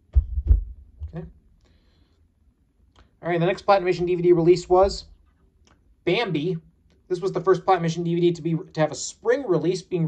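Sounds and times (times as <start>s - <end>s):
dull low thumps on camera: 0.0s - 1.4s.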